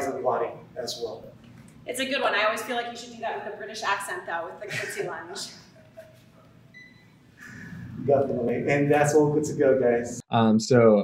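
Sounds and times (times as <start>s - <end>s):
person speaking: 7.5s - 10.6s.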